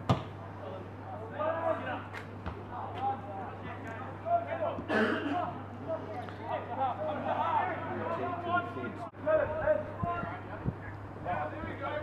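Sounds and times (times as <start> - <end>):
football kicked with a thud: 0.0 - 0.3.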